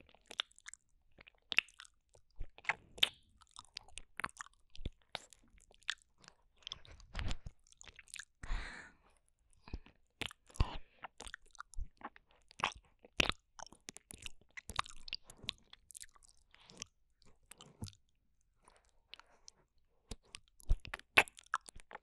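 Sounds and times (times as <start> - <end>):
wet licking and lip smacking: 0.1 - 8.3, 9.6 - 18.0.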